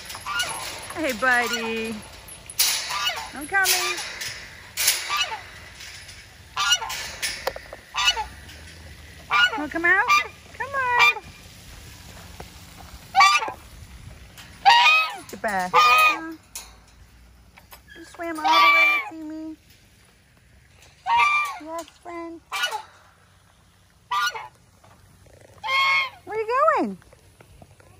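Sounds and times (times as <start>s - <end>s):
goose honking: 0.0s - 2.0s, 2.7s - 8.5s, 9.2s - 11.4s, 13.0s - 13.7s, 14.6s - 16.4s, 18.2s - 19.2s, 21.0s - 21.9s, 22.5s - 23.0s, 24.0s - 24.6s, 25.5s - 26.7s.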